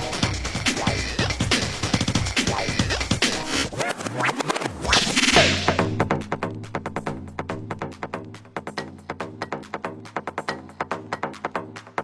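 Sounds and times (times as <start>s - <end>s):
breakbeat dance music: 0.0s - 12.0s.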